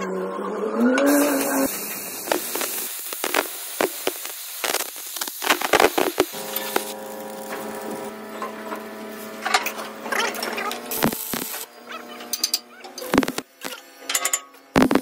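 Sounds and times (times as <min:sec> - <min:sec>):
cutting torch hissing and crackling: 0:01.1 - 0:11.8, 0:13.1 - 0:13.8, 0:14.7 - 0:15.0.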